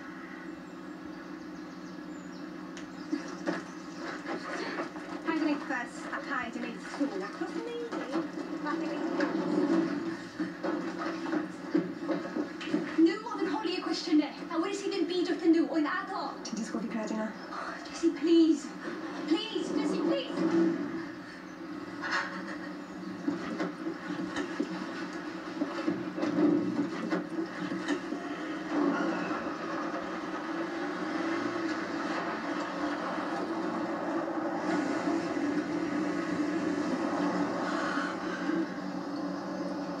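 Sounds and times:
low hum from television: 0.0s - 40.0s.

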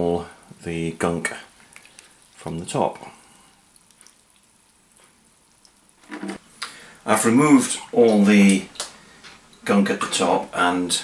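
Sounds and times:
liquid dripping and trickling: 1.5s - 6.0s, 8.0s - 9.7s
person speaking: 2.3s - 3.3s, 7.0s - 8.9s.

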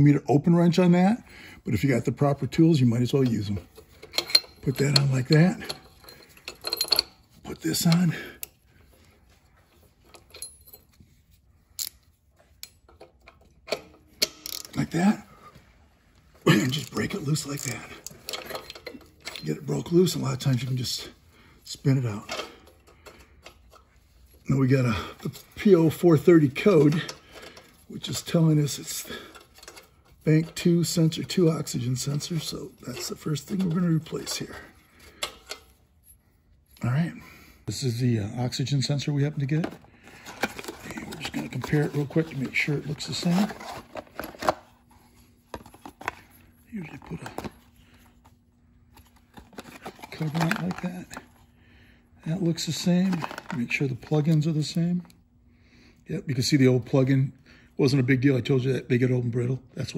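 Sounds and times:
man speaking: 0.0s - 3.7s, 4.6s - 5.8s, 7.4s - 8.4s, 14.7s - 15.5s, 16.4s - 18.0s, 19.4s - 22.4s, 24.5s - 27.1s, 30.2s - 34.8s, 36.8s - 39.8s, 40.8s - 43.6s
metal clicks of socket and ratchet: 11.8s - 12.0s, 12.6s - 14.7s.

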